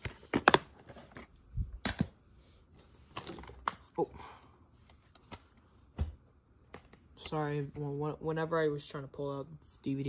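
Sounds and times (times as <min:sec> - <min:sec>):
plastic dvd cases clicking: 0:00.0 - 0:02.1, 0:03.1 - 0:03.9.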